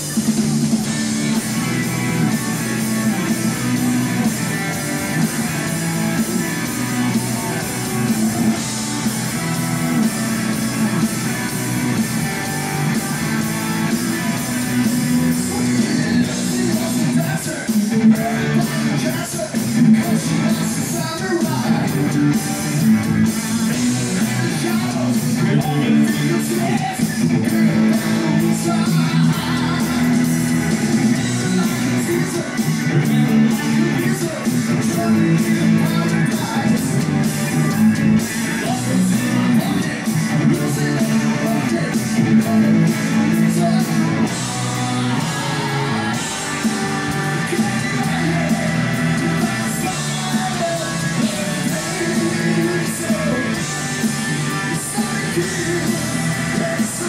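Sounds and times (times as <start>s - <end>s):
electric guitar: 0.0s - 57.0s
hard rock band playing: 0.0s - 57.0s.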